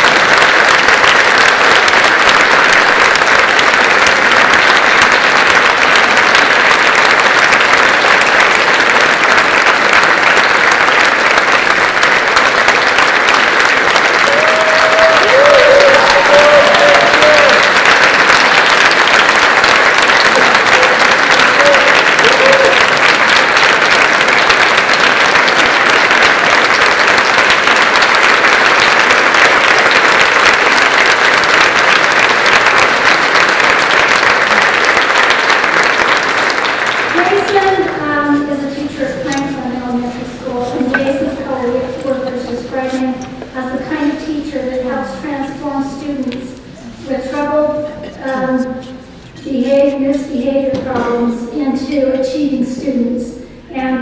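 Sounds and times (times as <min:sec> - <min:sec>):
audience applauding: 0:00.0 - 0:38.0.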